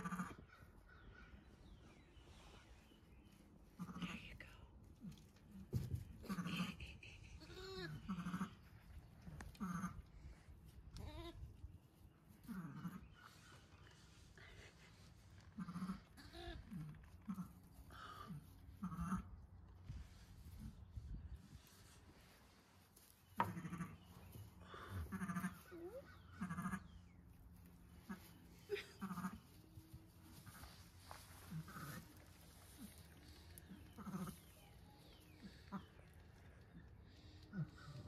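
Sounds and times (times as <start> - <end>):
newborn animal bleating: 0.0 - 0.5, 7.4 - 8.6, 15.6 - 16.6, 23.4 - 24.1, 24.9 - 26.9, 28.1 - 29.4, 33.9 - 34.5.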